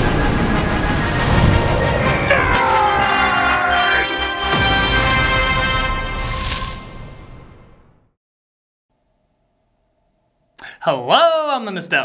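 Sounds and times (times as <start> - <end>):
animated intro theme music: 0.0 - 8.2.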